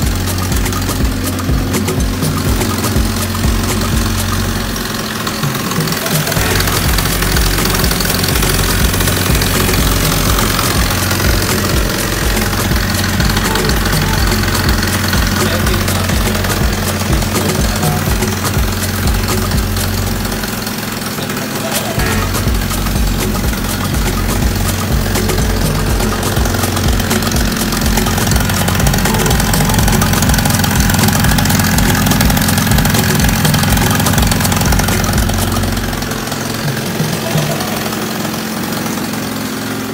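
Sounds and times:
scooter engine idling: 0:00.0 - 0:39.9.

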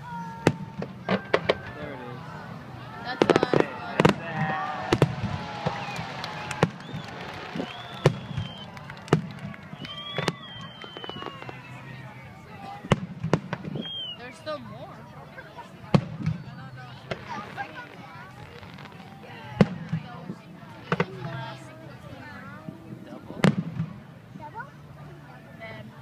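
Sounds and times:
fireworks bangs: 0:03.1 - 0:14.0, 0:15.8 - 0:21.6.

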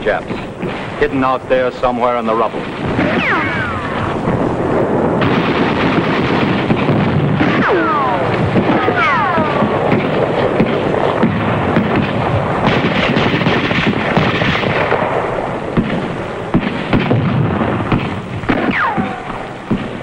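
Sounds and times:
heavy bangs: 0:00.0 - 0:20.0
rifle and machine-gun fire: 0:00.3 - 0:20.0
falling whistling whines: 0:03.0 - 0:04.2.

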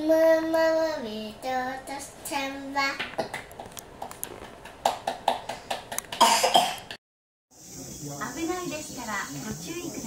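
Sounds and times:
hands clapping: 0:03.0 - 0:06.2
cough-like voice burst: 0:06.2 - 0:07.0.

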